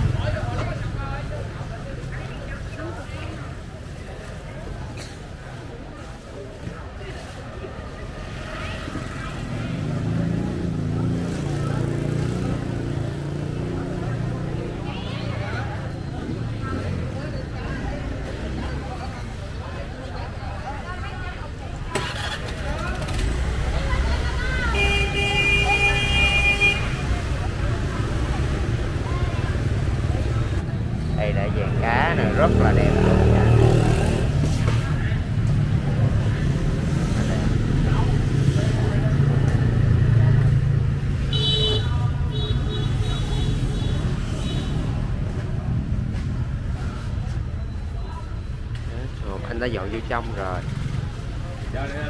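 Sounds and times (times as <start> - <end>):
motorbike traffic: 0.0 - 52.0
vehicle horn honking: 24.7 - 27.1, 41.3 - 43.5.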